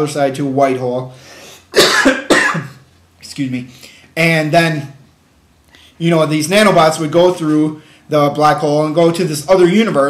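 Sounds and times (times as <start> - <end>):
man coughing: 1.7 - 2.9.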